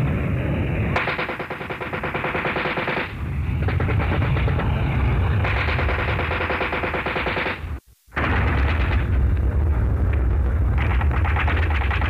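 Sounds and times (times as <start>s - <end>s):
continuous low rumble: 0.0s - 12.0s
machine-gun fire: 1.0s - 4.6s, 5.4s - 9.2s, 10.7s - 12.0s.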